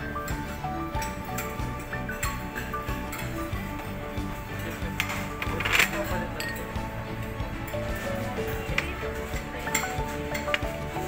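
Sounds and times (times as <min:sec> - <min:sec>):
background music: 0:00.0 - 0:11.0
glasses and dishes clinking: 0:00.0 - 0:11.0.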